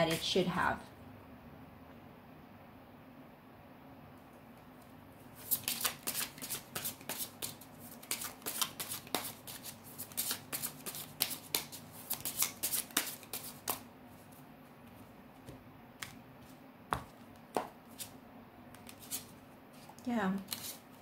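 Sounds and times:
cards being shuffled by hand: 5.4s - 18.1s, 18.7s - 21.0s.

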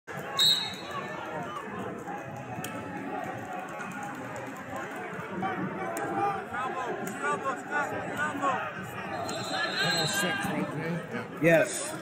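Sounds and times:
hubbub of many voices: 0.1s - 12.0s
referee's whistle blast: 0.3s - 1.0s, 9.1s - 10.4s.

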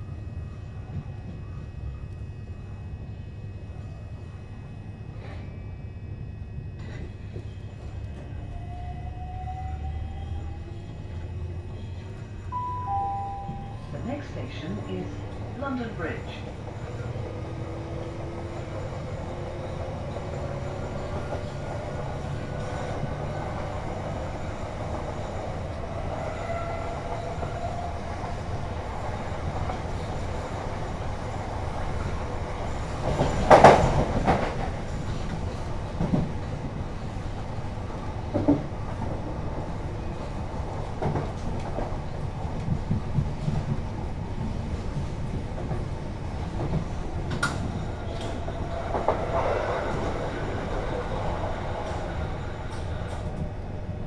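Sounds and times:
train wheels rumbling on rail: 6.5s - 54.0s.

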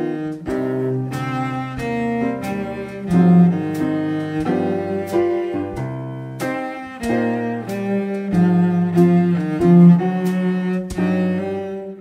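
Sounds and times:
bowed cello melody: 0.0s - 12.0s
piano chords: 0.0s - 12.0s.

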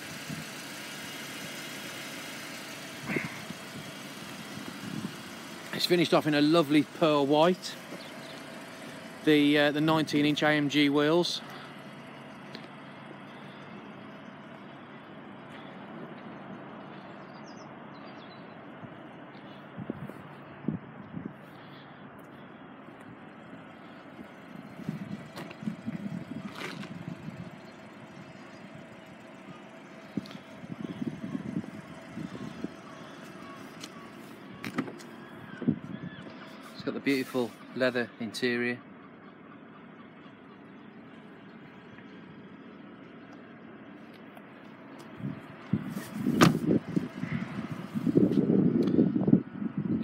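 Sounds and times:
outdoor background hum: 0.0s - 50.0s
car door latch clicks: 34.6s - 35.0s, 46.3s - 46.7s.

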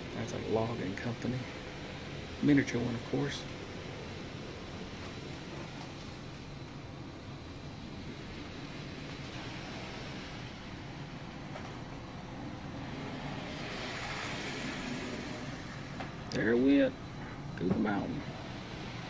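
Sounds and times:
model train running on track: 0.0s - 19.0s.

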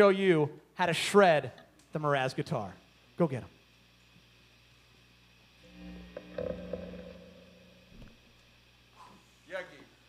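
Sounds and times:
electric guitar notes ringing: 5.6s - 8.4s.

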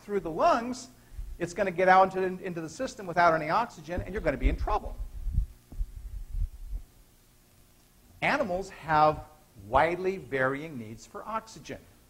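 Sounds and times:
footsteps low thuds: 1.1s - 1.4s, 3.9s - 7.1s.

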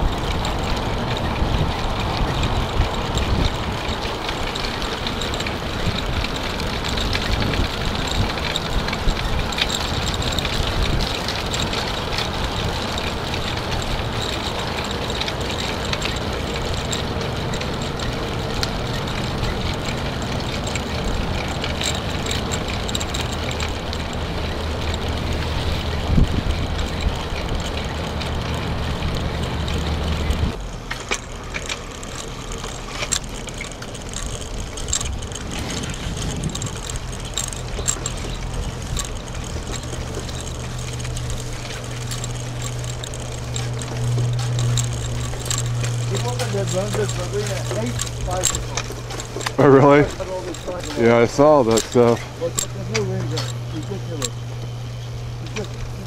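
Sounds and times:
bicycle ticks and rattles: 0.0s - 56.0s
bicycle wind and tyre noise: 0.0s - 56.0s
low hum: 0.0s - 56.0s.

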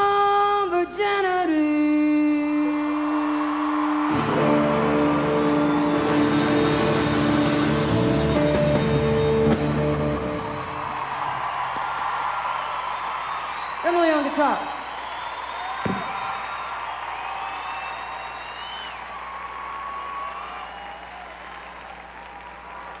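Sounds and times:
audience cheering and applause: 2.6s - 23.0s
live band final chord: 4.1s - 11.0s.

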